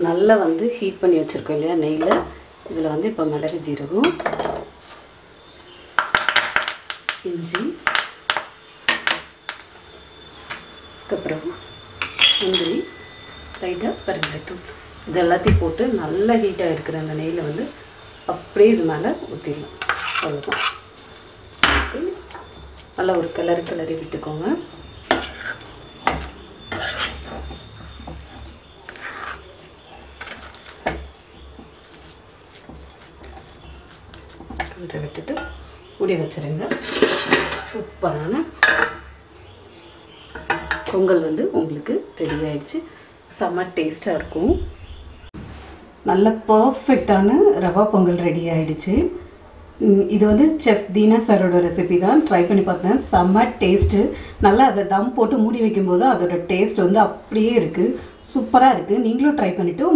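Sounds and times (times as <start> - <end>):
metal utensils clinking on pans: 12.0 - 13.1, 19.8 - 20.9, 25.1 - 31.8, 36.6 - 37.8, 38.6 - 39.1, 40.3 - 41.1
spoon clinking against pan: 12.0 - 13.2.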